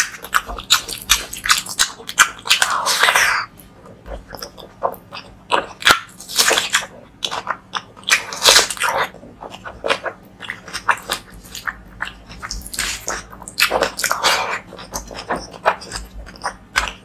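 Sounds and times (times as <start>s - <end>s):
wet chewing and lip smacking: 0.0s - 17.0s.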